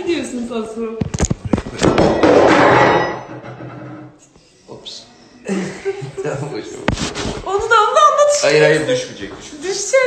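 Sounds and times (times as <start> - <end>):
rubbing and rustling against mic: 6.8 - 7.7.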